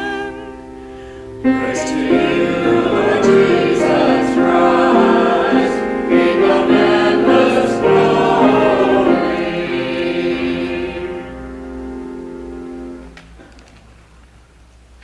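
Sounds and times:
choir singing held chords: 0:00.0 - 0:13.1.

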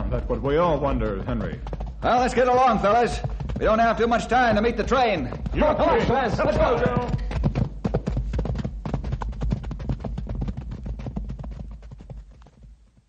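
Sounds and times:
horse hoofbeats clip-clopping: 0:00.0 - 0:13.0.

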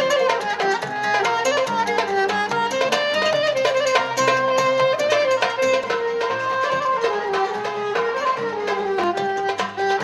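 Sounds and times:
plucked lute: 0:00.0 - 0:10.0
sharp plucked notes: 0:00.0 - 0:10.0.

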